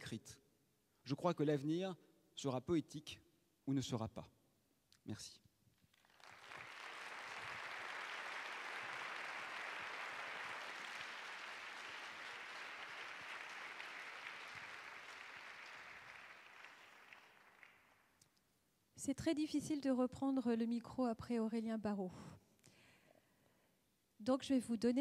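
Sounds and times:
audience applauding: 6.0 - 18.2.

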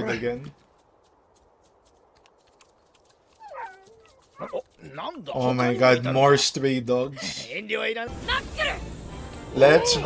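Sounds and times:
small dog whining: 3.4 - 4.6.

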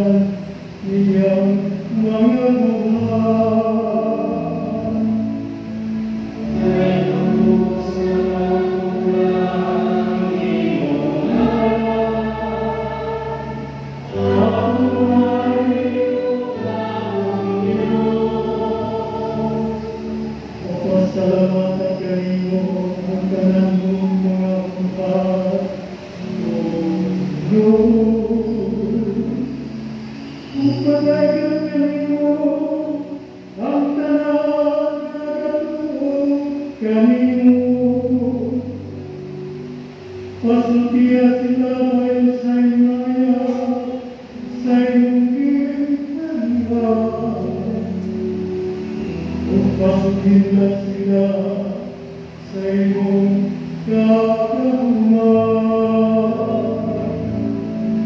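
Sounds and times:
choir singing a hymn: 0.0 - 58.0
low sustained tone: 0.0 - 58.0.

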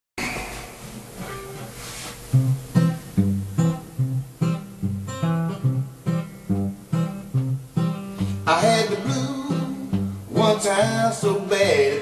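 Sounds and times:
steady hiss: 0.2 - 12.0.

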